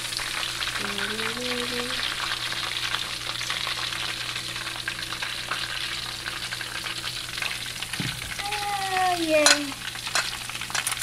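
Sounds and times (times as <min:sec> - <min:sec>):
hot oil sizzling in a wok: 0:00.0 - 0:11.0.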